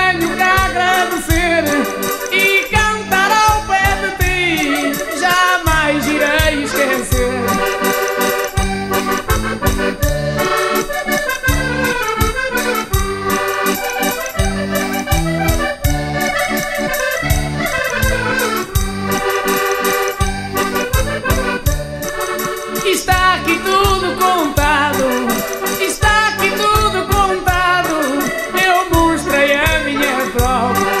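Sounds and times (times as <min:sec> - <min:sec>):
button accordion melody: 0:00.0 - 0:31.0
pulsing bass accompaniment: 0:00.0 - 0:31.0.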